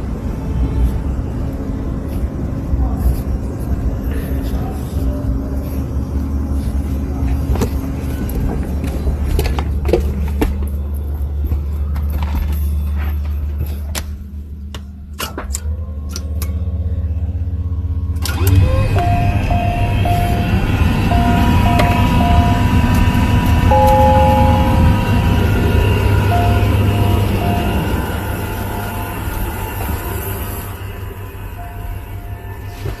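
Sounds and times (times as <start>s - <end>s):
cockpit systems humming: 0.0s - 33.0s
short electronic beeps: 19.0s - 20.5s, 21.1s - 22.9s, 23.6s - 25.4s, 26.0s - 29.2s
two-tone chime: 19.0s - 20.5s, 21.1s - 29.7s, 31.5s - 33.0s.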